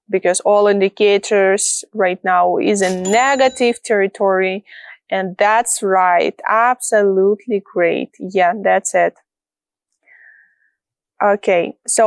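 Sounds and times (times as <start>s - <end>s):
woman speaking: 0.1s - 9.1s, 11.2s - 12.0s.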